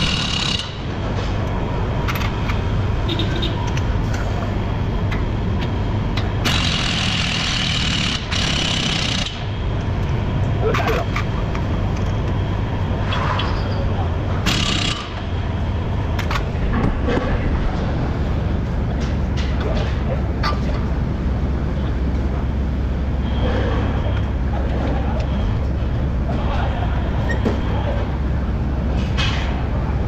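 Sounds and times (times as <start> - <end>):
low workshop hum: 0.0 - 30.0.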